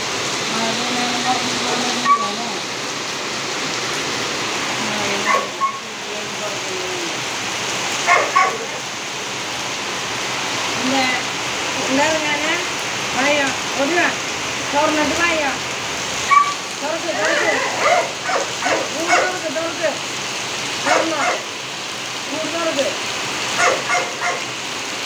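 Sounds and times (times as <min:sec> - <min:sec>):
heavy rain on tiles: 0:00.0 - 0:25.0
short voiced calls: 0:02.0 - 0:02.4, 0:16.3 - 0:18.2.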